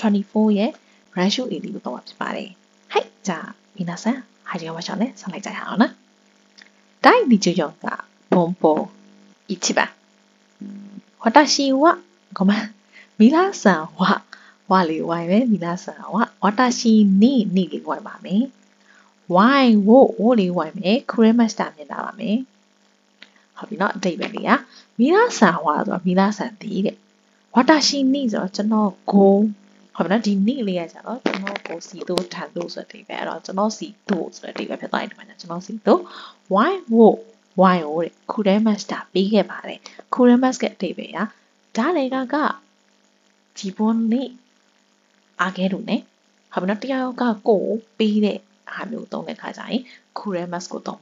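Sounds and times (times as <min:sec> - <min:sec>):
faint electrical hum: 0:00.0 - 0:51.0
person speaking: 0:06.6 - 0:10.0, 0:23.6 - 0:27.0, 0:27.6 - 0:42.5.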